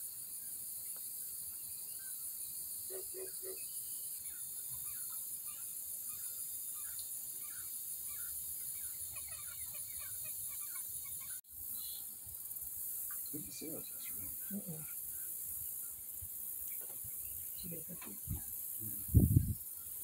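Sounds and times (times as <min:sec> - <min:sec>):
high drone of insects: 0:00.0 - 0:20.0
bird calls and chirps: 0:01.5 - 0:12.2.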